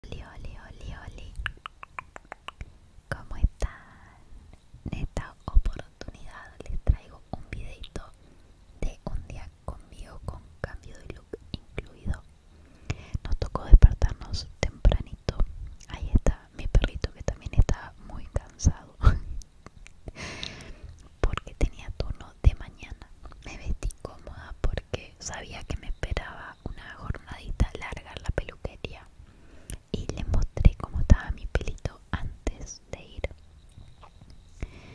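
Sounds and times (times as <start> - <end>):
woman whispering: 0.0 - 4.3, 4.9 - 8.2, 8.8 - 12.3, 12.9 - 19.4, 21.0 - 29.1, 29.7 - 33.4.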